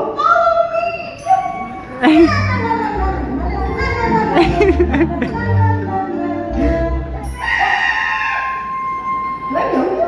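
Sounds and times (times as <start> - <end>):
show music: 1.2 - 7.8.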